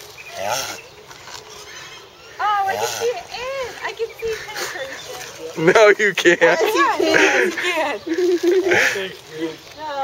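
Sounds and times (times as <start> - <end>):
tortoise mating groan: 0.0 - 5.4.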